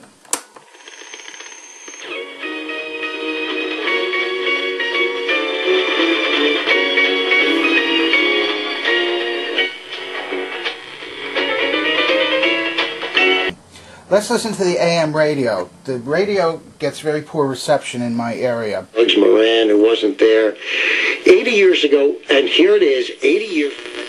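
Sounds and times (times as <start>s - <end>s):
music from small speaker: 2.0s - 13.6s.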